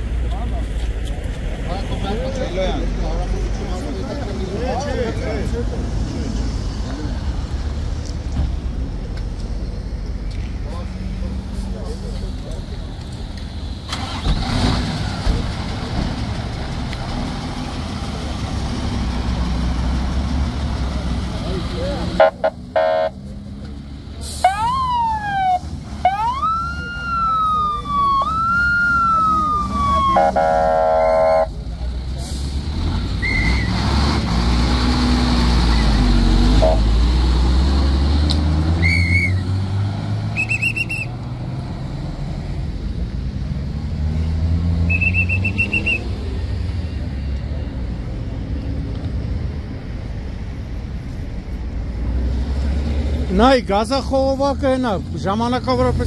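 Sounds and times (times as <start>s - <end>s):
vehicle engines running: 0.0s - 56.0s
emergency vehicle siren: 24.2s - 31.5s, 36.5s - 37.0s.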